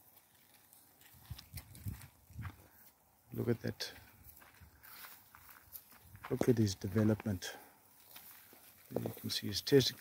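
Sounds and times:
faint footsteps on sandy ground: 0:00.0 - 0:10.0.

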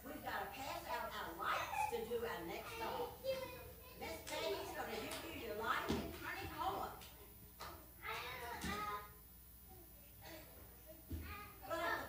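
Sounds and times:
young children's voices: 0:01.4 - 0:04.8.

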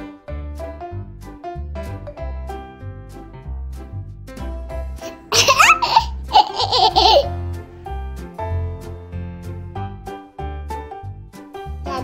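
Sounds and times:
upbeat children's music: 0:00.0 - 0:12.0
girl laughing loudly: 0:05.0 - 0:07.3.

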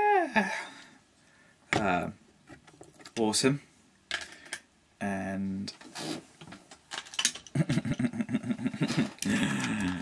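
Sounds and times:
man laughing: 0:07.5 - 0:10.0.

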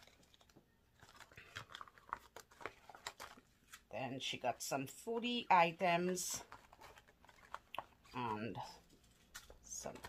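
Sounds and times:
packaging crinkling and rustling: 0:00.0 - 0:03.9, 0:06.3 - 0:10.0.

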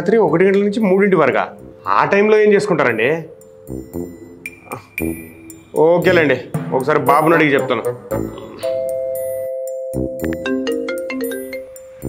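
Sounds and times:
man speaking: 0:00.0 - 0:03.3, 0:05.7 - 0:08.7
electronic chime: 0:02.9 - 0:06.5.

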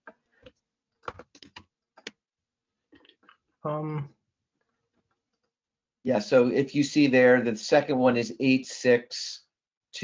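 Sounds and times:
computer keyboard typing: 0:01.0 - 0:02.1.

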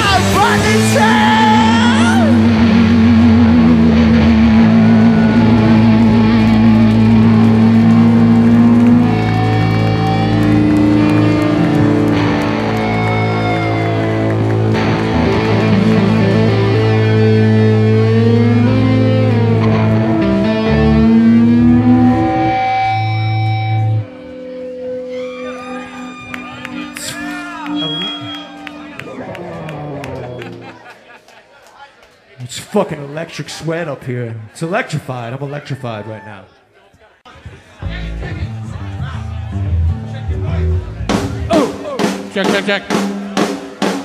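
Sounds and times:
bass and drums: 0:00.0 - 0:24.0, 0:37.8 - 0:44.0
guitar notes ringing: 0:00.0 - 0:30.6
distorted electric guitars: 0:00.0 - 0:30.8.

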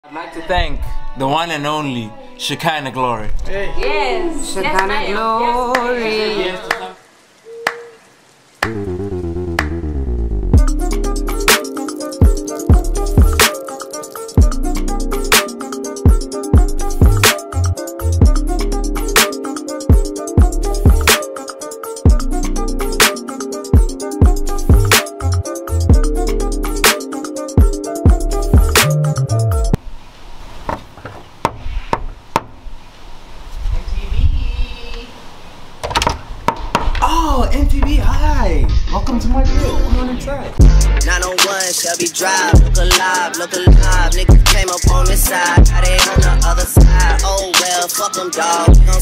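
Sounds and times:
deep bass note: 0:08.7 - 0:10.8, 0:40.6 - 0:41.2.

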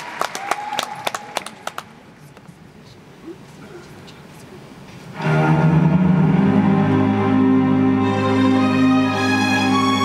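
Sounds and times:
orchestra playing: 0:05.1 - 0:10.0
bowed strings sustained chord: 0:05.2 - 0:10.0.

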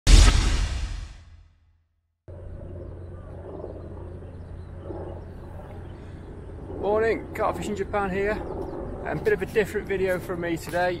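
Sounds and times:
loud boom: 0:00.0 - 0:01.5
outdoor background hum: 0:02.3 - 0:11.0.

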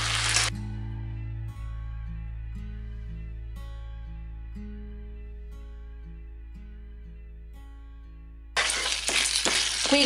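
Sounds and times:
spaghetti sizzling in frying pan: 0:00.0 - 0:00.5, 0:08.6 - 0:10.0
soft acoustic guitar music: 0:00.5 - 0:08.6.

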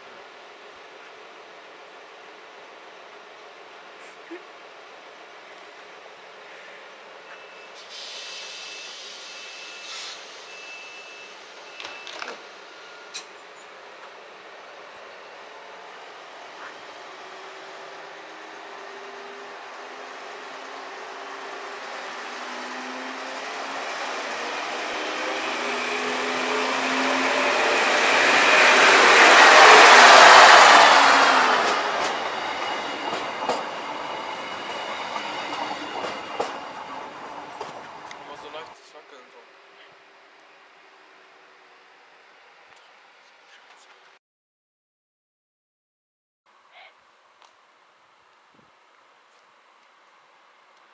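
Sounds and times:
diesel train engine: 0:00.0 - 0:42.6
wheel-on-rail noise: 0:19.0 - 0:38.8.

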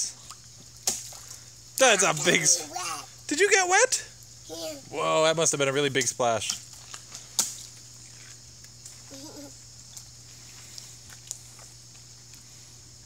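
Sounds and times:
steady high hiss: 0:00.0 - 0:13.0
small splashes and taps: 0:00.2 - 0:02.4, 0:05.8 - 0:09.2, 0:09.8 - 0:12.4.

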